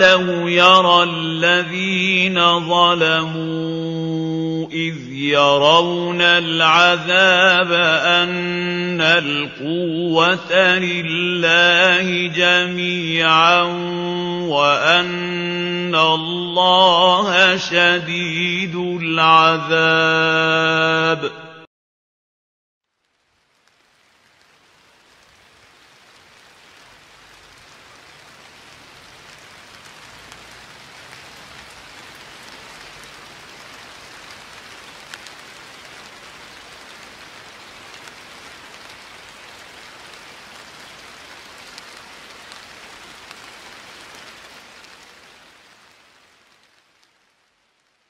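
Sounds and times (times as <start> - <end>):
steady hiss: 23.0 - 48.0
faint ticks: 35.0 - 35.4.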